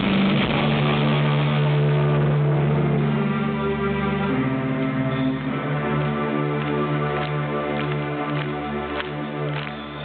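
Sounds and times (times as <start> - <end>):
heavy metal band playing live: 0.0 - 3.4.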